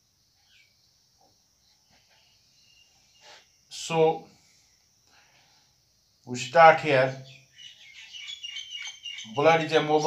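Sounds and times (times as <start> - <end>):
birds chirping: 6.3 - 10.0.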